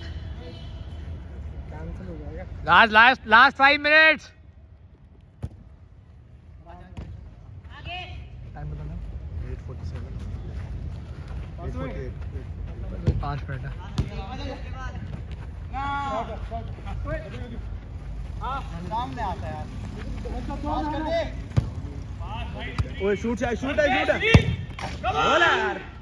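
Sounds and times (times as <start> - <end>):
football being kicked: 5.4 - 5.7, 13.0 - 14.3, 21.5 - 21.8, 24.1 - 25.0
players shouting: 20.3 - 26.0.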